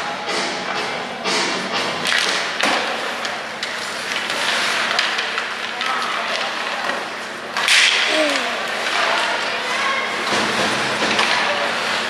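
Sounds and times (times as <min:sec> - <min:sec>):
arena noise: 0:08.0 - 0:09.3.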